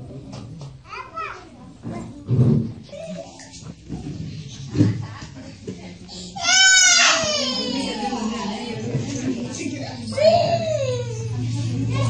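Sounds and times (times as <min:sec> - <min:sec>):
quiet voices: 0:00.0 - 0:12.0
child's high-pitched cry: 0:06.4 - 0:08.2.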